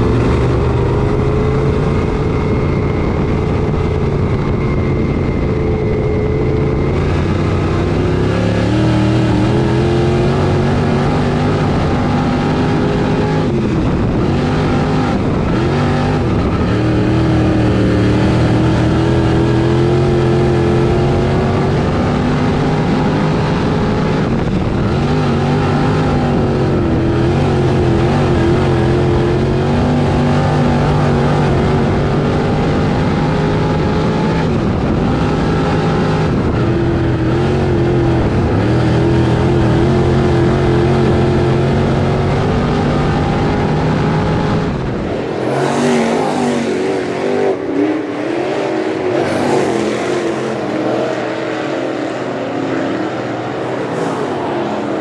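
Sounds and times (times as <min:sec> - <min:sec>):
race car engine revving: 0:00.0 - 0:55.0.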